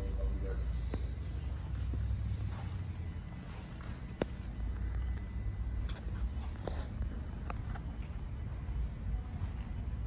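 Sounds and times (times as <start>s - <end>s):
low room noise rumble: 0.0s - 10.0s.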